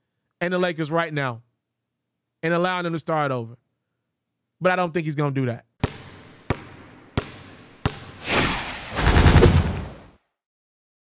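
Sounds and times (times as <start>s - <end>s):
basketball bouncing on hard floor: 5.8s - 8.2s
whooshing rush: 8.2s - 10.0s.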